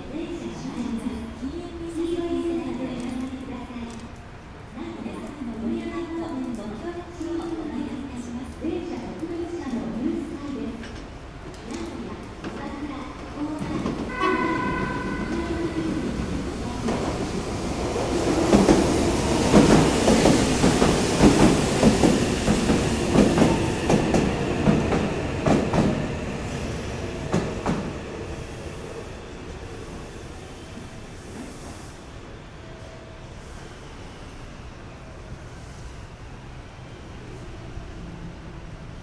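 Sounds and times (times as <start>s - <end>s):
train wheels clattering over rails: 13.6s - 28.1s
train horn blast: 14.1s - 15.5s.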